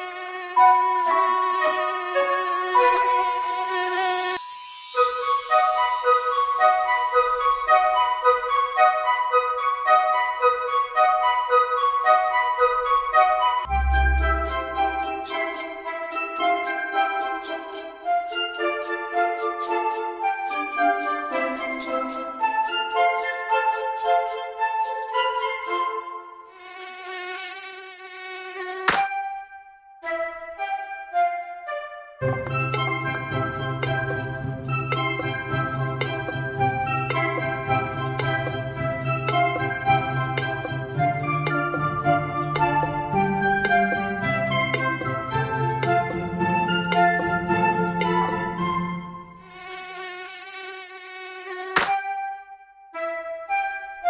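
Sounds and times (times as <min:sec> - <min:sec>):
cartoon mosquito buzzing: 0:00.0 - 0:04.4, 0:26.5 - 0:29.3, 0:49.4 - 0:52.1
children's song music: 0:00.6 - 0:26.5, 0:30.0 - 0:49.5
sharp snap: 0:28.8 - 0:29.2, 0:51.7 - 0:52.0.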